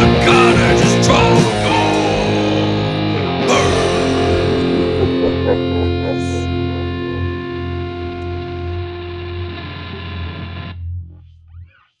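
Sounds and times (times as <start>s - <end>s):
distorted electric guitar chord: 0.0s - 10.8s.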